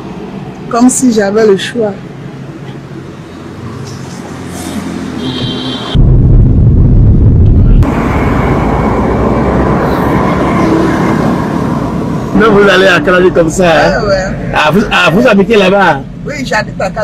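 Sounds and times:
car engine and road noise: 0:00.0 - 0:17.0
loud low rumble: 0:06.0 - 0:10.8.

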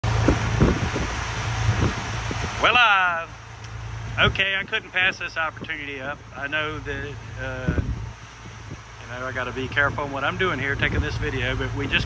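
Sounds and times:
boat engines droning: 0:00.0 - 0:12.0
wind buffeting microphone: 0:00.0 - 0:12.0.

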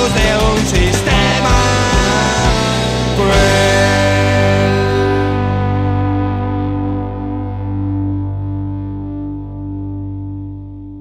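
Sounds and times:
distorted electric guitar chord: 0:00.0 - 0:11.0.

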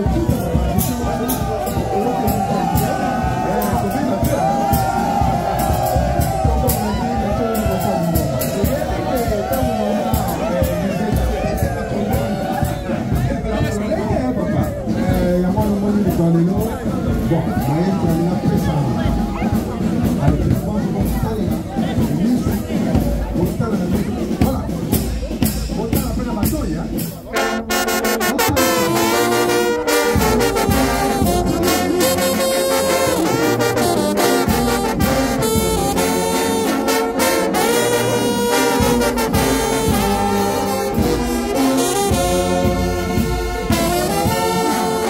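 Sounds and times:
brass band playing: 0:00.0 - 0:45.0
crowd voices: 0:00.0 - 0:45.0.

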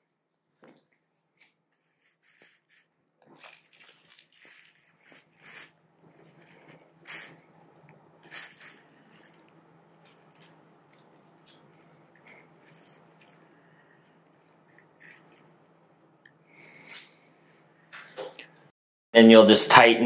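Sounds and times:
faint steady hum: 0:00.0 - 0:20.0.

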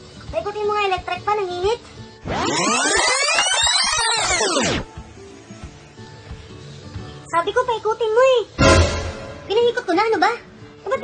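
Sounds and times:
faint background music: 0:00.0 - 0:11.0
overlapping sliding tones: 0:02.2 - 0:04.8.

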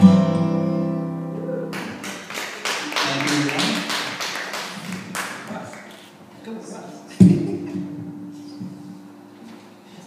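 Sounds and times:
audience clapping: 0:01.7 - 0:06.1.

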